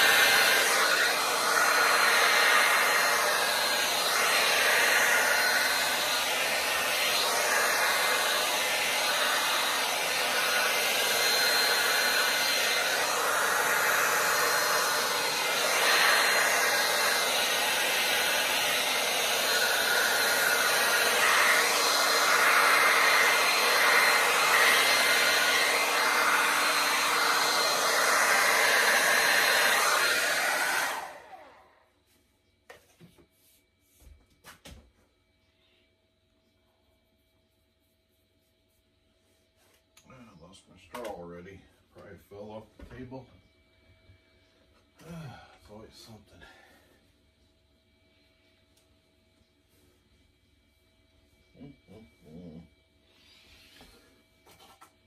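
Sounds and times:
hair dryer running: 0.0s - 31.8s, 52.3s - 54.9s.

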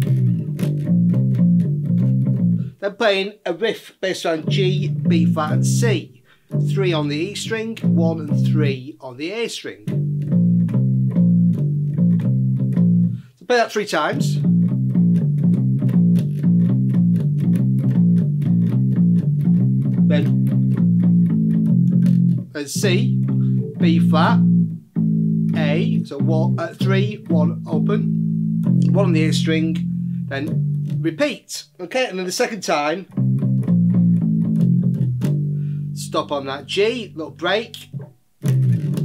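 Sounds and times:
electric bass guitar riff: 0.0s - 2.8s, 4.4s - 13.3s, 14.0s - 31.4s, 32.8s - 39.0s.

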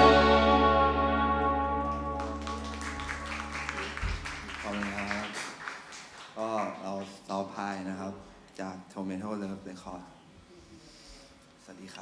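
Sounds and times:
band's final chord ringing: 0.0s - 2.4s
electric guitars and bass sustaining: 0.0s - 4.2s
scattered hand clapping: 1.8s - 7.1s.

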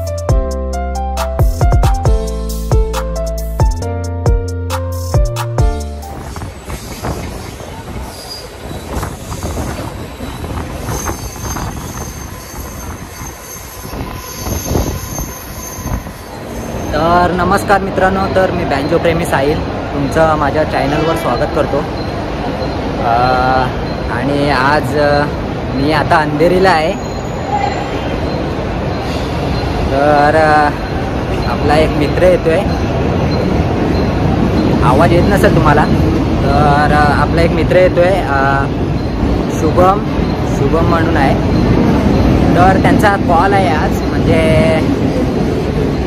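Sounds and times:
train wheels rumbling on rails: 5.8s - 46.0s
high wheel squeal: 6.1s - 17.4s, 26.6s - 37.4s, 38.6s - 45.5s.

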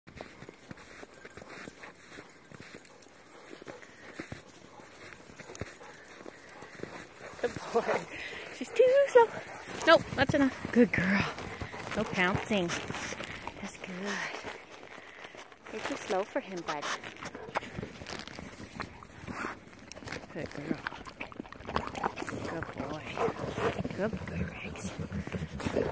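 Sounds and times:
footsteps crunching in snow: 0.1s - 24.1s
person speaking: 7.4s - 14.5s.

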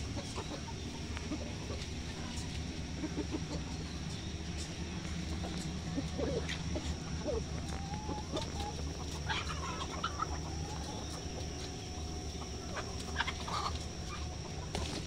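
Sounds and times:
chickens clucking: 0.0s - 15.0s
steady low hum: 0.0s - 15.0s.

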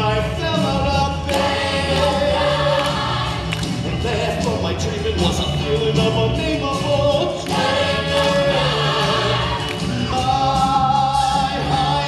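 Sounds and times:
group of voices singing: 1.0s - 5.6s, 6.2s - 12.0s.

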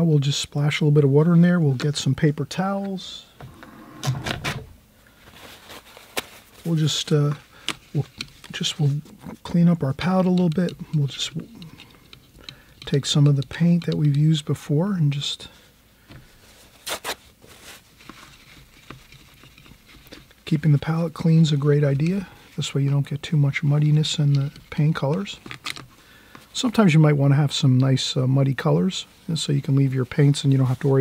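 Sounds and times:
faint paper handling: 2.8s - 13.0s, 15.5s - 23.0s
paper towels rustling: 4.4s - 6.9s, 16.2s - 20.2s, 29.1s - 31.0s
paper towel wiping metal palette: 16.4s - 20.4s.

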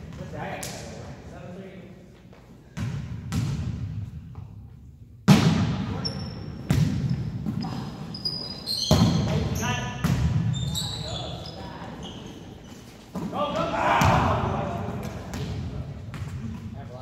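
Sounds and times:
volleyball being hit: 5.3s - 5.9s
sneaker squeaks on hardwood floor: 6.0s - 13.2s.

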